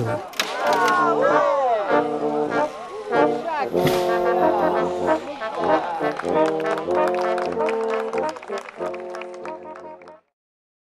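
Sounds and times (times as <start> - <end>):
voices: 0.0 - 6.7
brass band playing held chords: 0.0 - 10.2.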